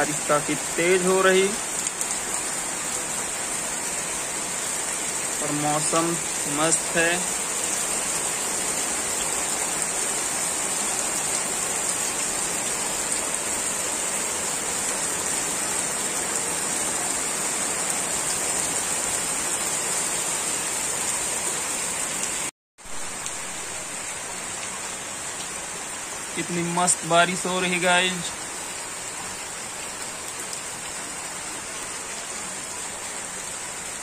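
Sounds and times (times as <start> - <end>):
heavy rain: 0.0 - 34.0.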